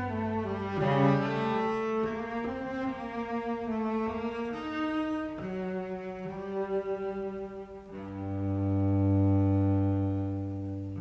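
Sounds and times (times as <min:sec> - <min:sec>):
cello bowed low note: 0:00.0 - 0:11.0.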